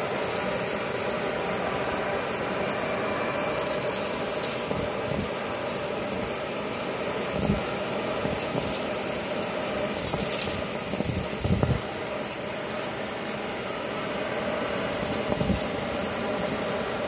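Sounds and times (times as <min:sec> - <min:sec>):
vacuum motor whine: 0:00.0 - 0:17.0.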